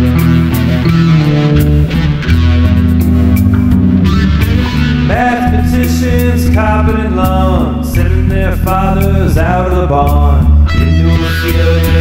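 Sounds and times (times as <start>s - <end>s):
rock guitar and bass: 0.0s - 12.0s.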